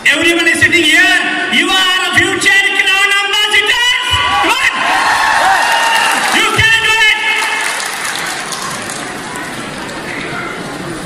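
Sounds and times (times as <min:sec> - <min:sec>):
audience clapping: 0:05.0 - 0:09.9.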